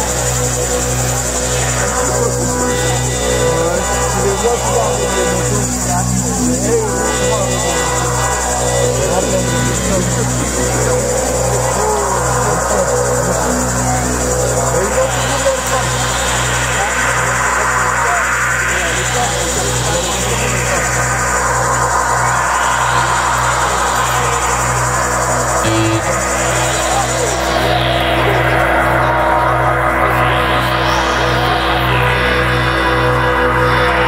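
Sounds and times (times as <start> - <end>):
synthesizer drone: 0.0 - 34.0
pulsing low bass note: 25.6 - 27.3.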